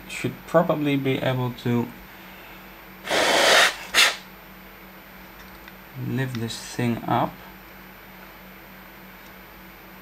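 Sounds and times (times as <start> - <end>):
short sharp puff of breath: 3.1 - 4.2.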